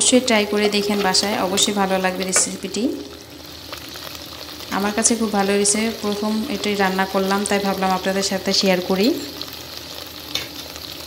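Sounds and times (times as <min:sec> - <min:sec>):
onions sizzling in hot oil: 0:00.0 - 0:11.0.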